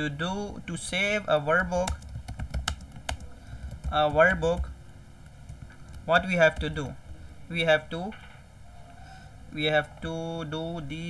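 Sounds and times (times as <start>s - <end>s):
typing on computer keyboard: 1.6s - 4.7s.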